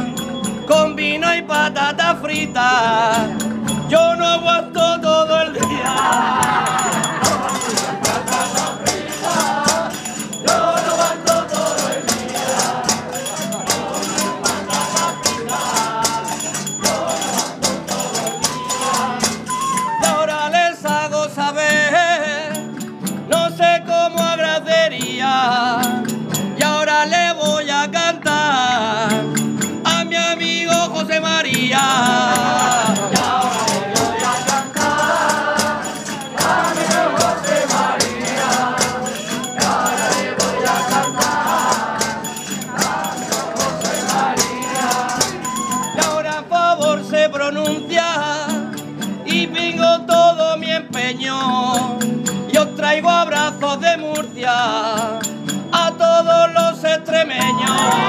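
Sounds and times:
hand percussion: 0.0s - 58.0s
person singing with vibrato: 0.0s - 58.0s
plucked strings: 5.6s - 20.0s, 31.7s - 46.7s
wavering melody line: 5.7s - 20.1s, 57.4s - 58.0s.

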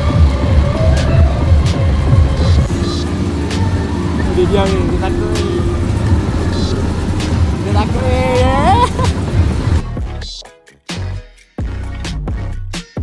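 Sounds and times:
low rumble of machinery: 0.0s - 10.3s
voices: 0.0s - 10.4s
music with steady beat: 0.0s - 13.0s.

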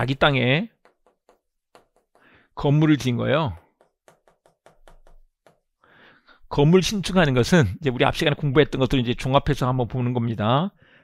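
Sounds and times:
pen tapping on whiteboard: 0.7s - 5.8s.

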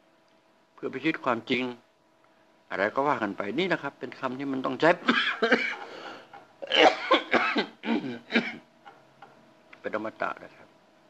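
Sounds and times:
man coughing: 5.0s - 8.7s.

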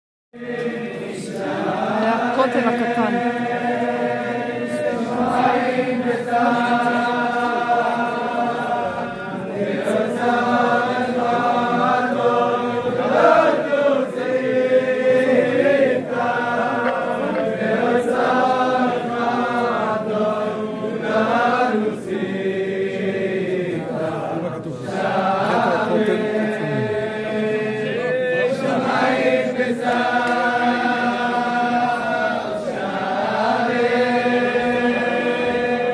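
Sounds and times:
men chanting in unison: 0.4s - 35.9s.

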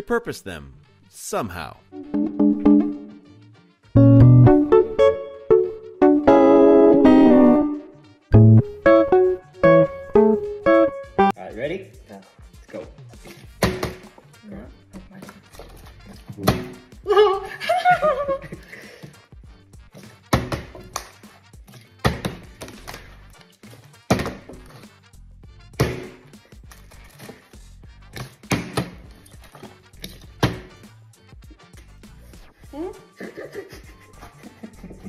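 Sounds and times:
person speaking: 0.0s - 2.0s
plastic bottle landing on table: 13.6s - 14.1s, 24.1s - 24.6s.

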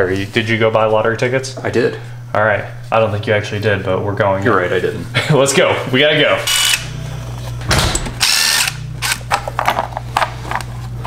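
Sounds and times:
cordless power driver running: 6.4s - 9.6s.

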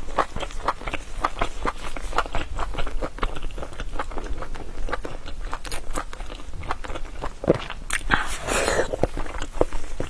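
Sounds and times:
chewing and crunching: 0.0s - 10.0s.

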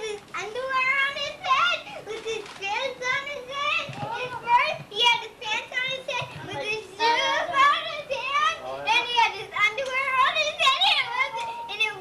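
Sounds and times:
young children talking: 0.0s - 12.0s.

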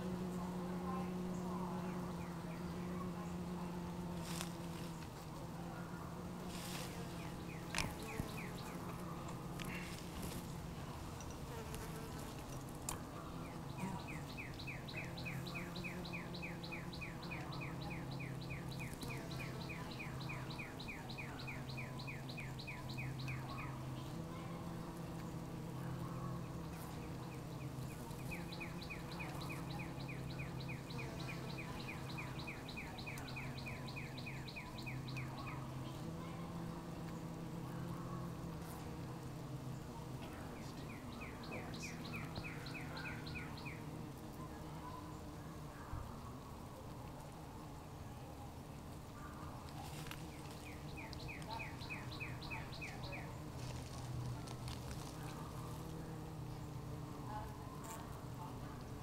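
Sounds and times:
bees humming: 0.0s - 59.0s.

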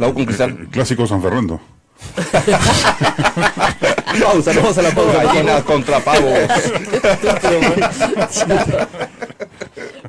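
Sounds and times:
group of people laughing: 2.0s - 10.0s.

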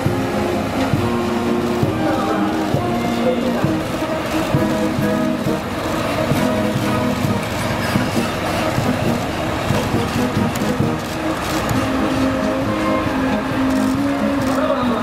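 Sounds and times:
heavy truck engines driving past: 0.0s - 15.0s
march music: 0.0s - 15.0s.

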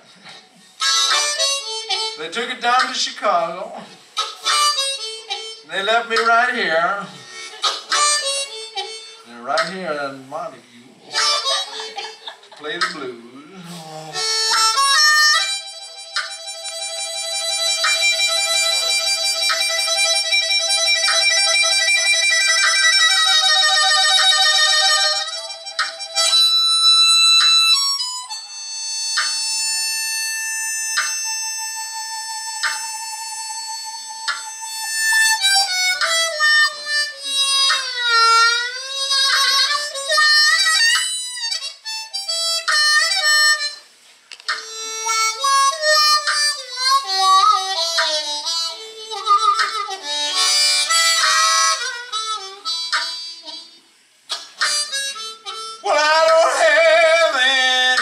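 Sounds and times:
blues harmonica: 0.0s - 58.0s.

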